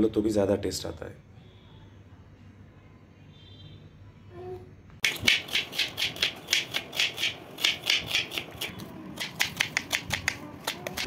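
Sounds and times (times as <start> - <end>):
knife chopping on wooden board: 5.0 - 11.0.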